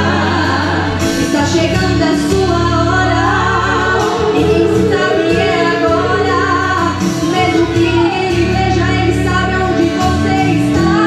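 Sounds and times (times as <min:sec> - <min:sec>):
instrumental backing: 0:00.0 - 0:11.0
women singing a hymn: 0:00.0 - 0:11.0.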